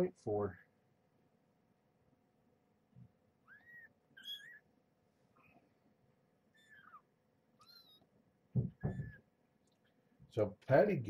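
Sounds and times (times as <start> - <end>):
kittens mewing: 3.5 - 4.7, 6.6 - 8.1.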